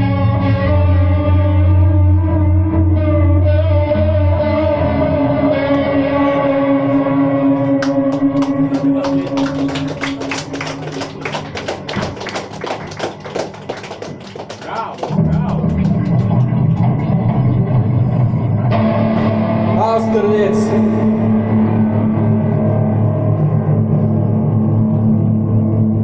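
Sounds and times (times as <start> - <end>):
picked electric guitar notes: 0.0 - 11.4, 15.1 - 26.0
loud bass and guitar drone: 0.0 - 26.0.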